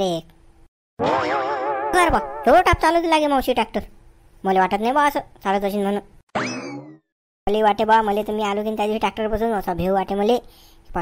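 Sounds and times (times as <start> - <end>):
cartoon boing swoop: 1.0 - 3.0, 6.4 - 7.0.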